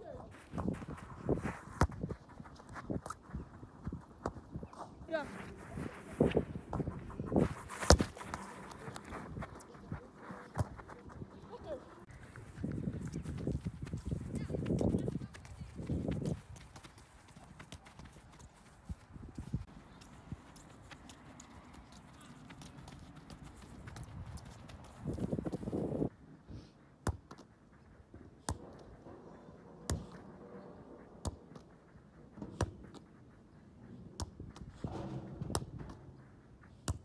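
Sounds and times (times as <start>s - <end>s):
footsteps on artificial turf: 0.1s - 26.1s, 27.5s - 37.0s.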